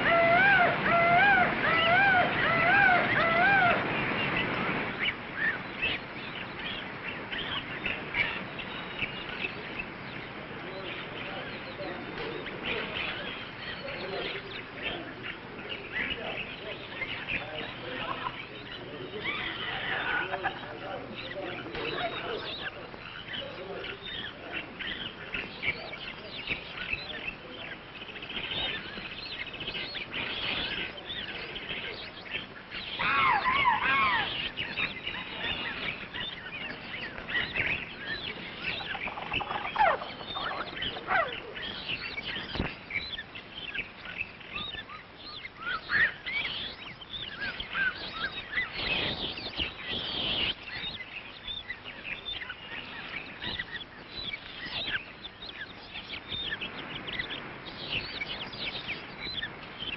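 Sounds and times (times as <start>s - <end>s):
many birds chirping and squawking: 0.0s - 59.9s.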